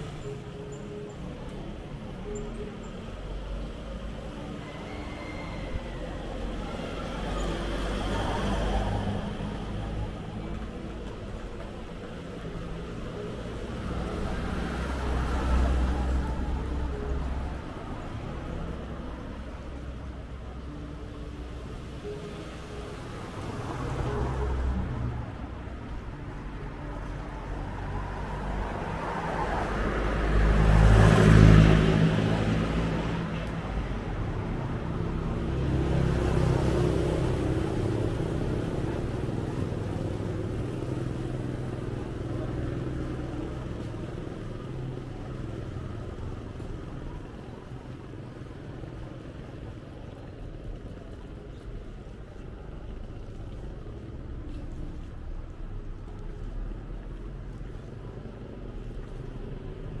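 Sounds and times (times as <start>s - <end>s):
faint street traffic: 0.0s - 60.0s
vehicle passing quietly: 0.0s - 60.0s
vehicle passing close: 22.8s - 48.5s.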